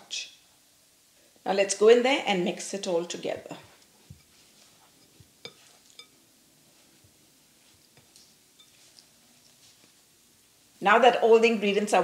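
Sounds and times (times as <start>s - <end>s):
spatula mixing mashed potato: 3.7s - 10.1s
spatula tapping glass bowl: 5.4s - 6.2s, 8.6s - 9.0s.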